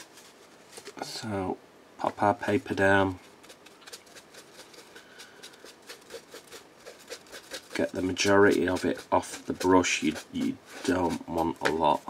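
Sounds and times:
brush scratching on paper: 0:00.0 - 0:01.0, 0:02.4 - 0:12.0.

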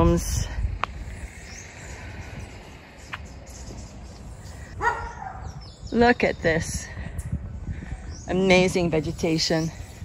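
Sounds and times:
distant birds calling: 0:00.0 - 0:10.0
bird chirp: 0:01.1 - 0:06.6.

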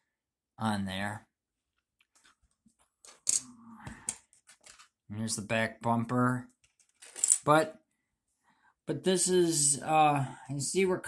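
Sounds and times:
plastic parts clicking and tapping: 0:04.0 - 0:05.0.

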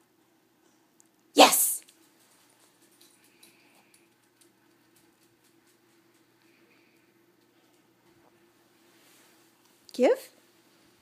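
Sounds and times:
faint steady hum: 0:00.0 - 0:11.0
dog claws clicking on concrete: 0:02.0 - 0:06.3.

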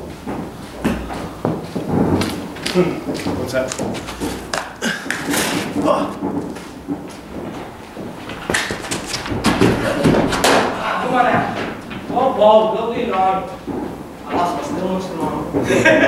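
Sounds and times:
sharp knocks and thuds: 0:00.1 - 0:16.0
indistinct voices talking: 0:02.6 - 0:16.0.

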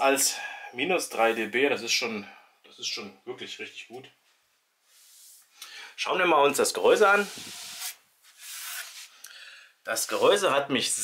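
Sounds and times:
hand rubbing against cabinet: 0:07.1 - 0:09.1.

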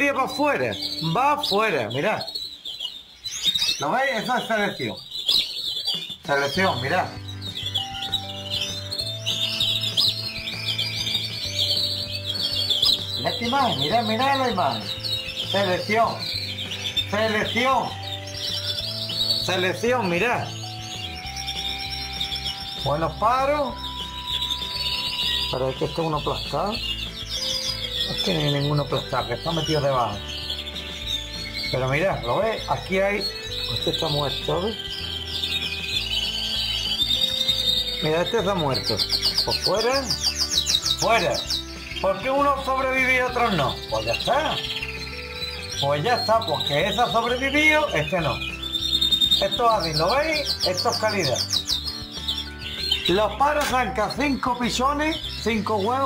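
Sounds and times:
canaries singing: 0:00.0 - 0:56.0.

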